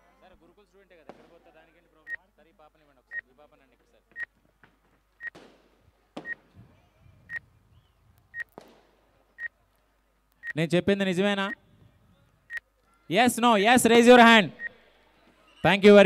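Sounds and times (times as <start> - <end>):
faint voices: 5.9 - 8.4.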